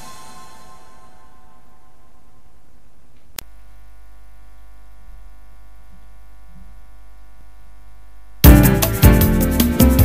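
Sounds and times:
low electrical mains hum: 0:00.0 - 0:08.5.

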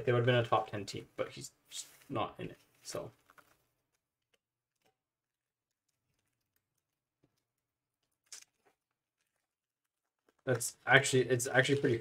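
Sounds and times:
foil card packs rustling: 0:02.0 - 0:04.9.

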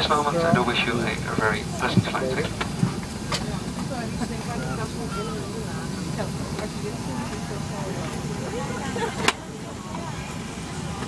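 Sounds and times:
airliner cabin hum: 0:00.0 - 0:11.0
passengers talking: 0:00.0 - 0:11.0.

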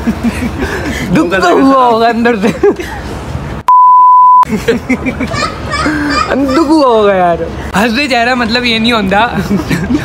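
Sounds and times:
censor bleep: 0:03.7 - 0:04.5.

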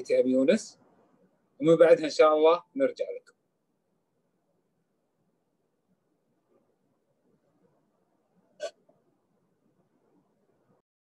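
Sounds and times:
faint microphone background noise: 0:00.0 - 0:10.8.

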